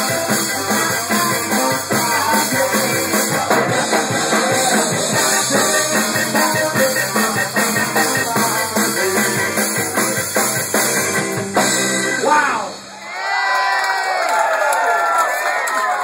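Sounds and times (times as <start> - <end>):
ska band playing: 0.0 - 13.2
crowd cheering and whistling: 12.0 - 16.0.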